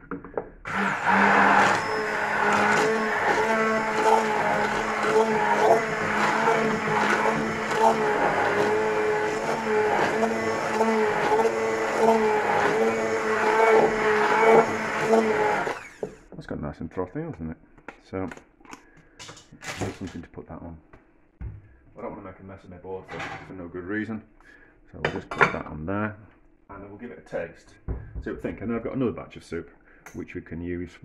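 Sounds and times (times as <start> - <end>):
stick blender motor hum: 0.7 - 16.3.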